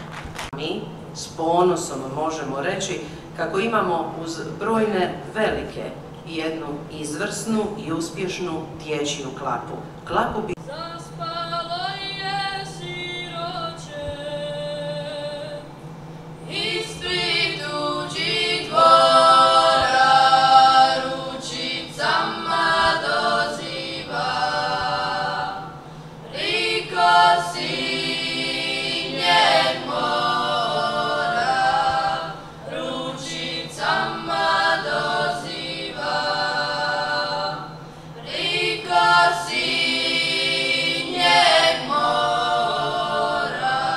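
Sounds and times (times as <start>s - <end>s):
children singing in harmony: 16.5s - 43.9s.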